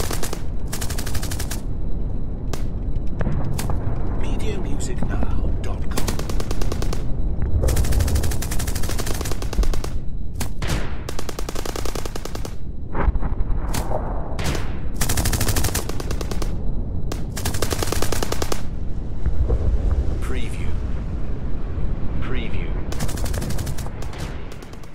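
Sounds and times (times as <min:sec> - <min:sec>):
automatic gunfire bursts: 0:00.0 - 0:01.6, 0:05.9 - 0:07.1, 0:07.7 - 0:12.6, 0:15.0 - 0:18.7.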